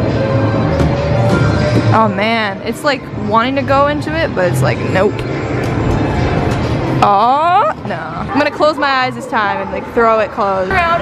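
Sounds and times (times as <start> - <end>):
distant crowd chatter: 0.1 - 11.0.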